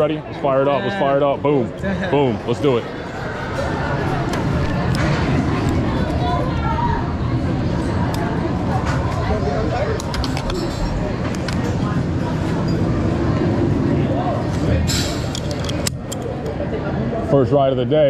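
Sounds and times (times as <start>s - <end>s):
people chattering: 0.0s - 18.0s.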